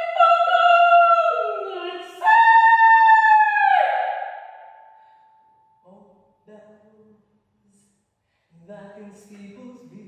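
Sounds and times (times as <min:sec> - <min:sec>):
woman singing high note: 0:00.0 - 0:04.9.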